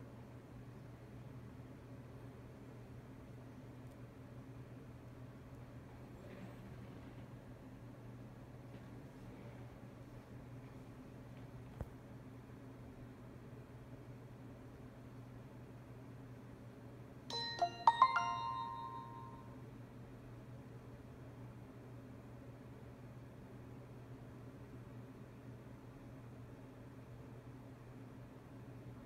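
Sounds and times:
faint low hum: 0:00.0 - 0:29.0
phone startup chime: 0:17.3 - 0:19.5.

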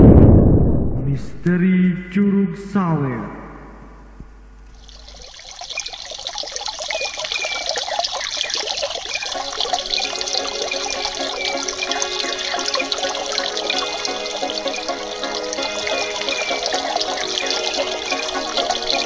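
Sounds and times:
waterfall pouring into pool: 0:04.7 - 0:19.0
music with held tones: 0:09.4 - 0:19.0.

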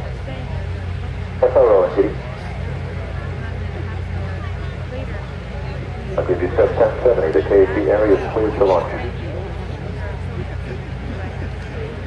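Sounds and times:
steady low hum: 0:00.0 - 0:12.0
man's voice over radio: 0:01.4 - 0:02.3, 0:06.2 - 0:09.2.

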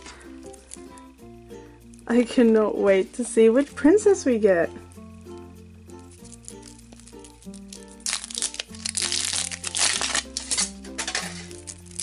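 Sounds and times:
background music with bass line: 0:00.0 - 0:02.2
foil wrapper crinkling: 0:06.1 - 0:12.0.

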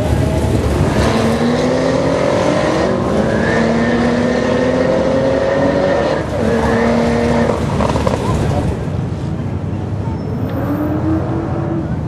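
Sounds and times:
car engines rumbling: 0:00.0 - 0:12.0.

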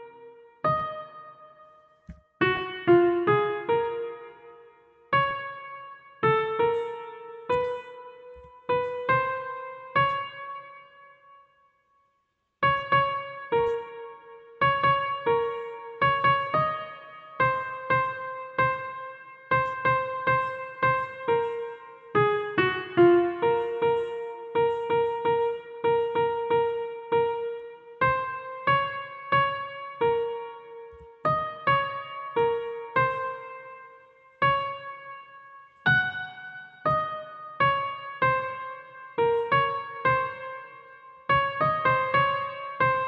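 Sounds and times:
single piano-like notes: 0:00.0 - 0:11.4, 0:12.6 - 0:43.0.

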